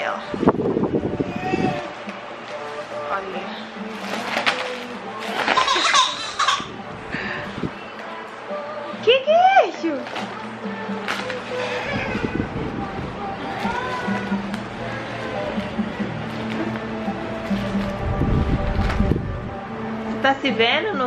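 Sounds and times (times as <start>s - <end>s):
background music: 0.0s - 21.0s
toddler vocal sounds: 1.2s - 2.0s.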